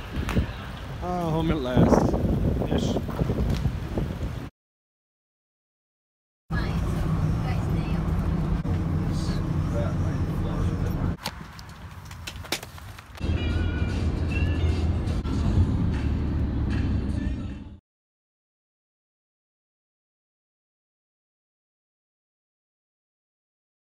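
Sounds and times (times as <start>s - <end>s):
wind rumbling on microphone: 0.0s - 4.5s.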